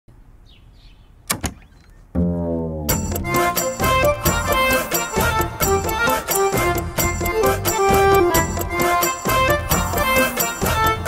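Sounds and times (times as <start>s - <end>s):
wooden door clicks: 1.3s - 2.0s.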